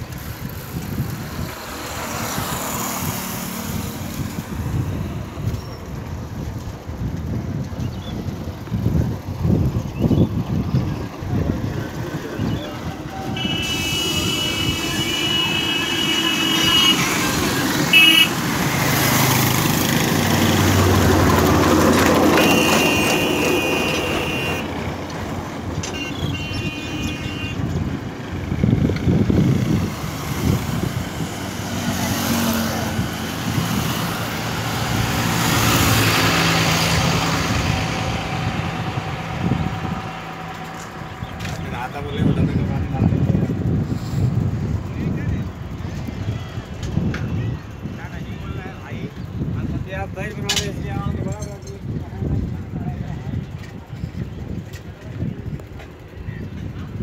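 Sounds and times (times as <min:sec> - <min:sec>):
wind rumble on microphone: 0:00.0 - 0:22.5, 0:24.1 - 0:57.0
highway traffic: 0:00.0 - 0:57.0
vehicle horns: 0:12.9 - 0:18.8, 0:22.0 - 0:24.8, 0:25.8 - 0:27.8.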